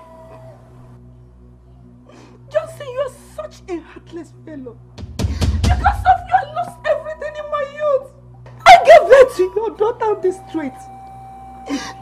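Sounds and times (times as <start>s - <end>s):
woman shouting: 5.7s - 10.8s.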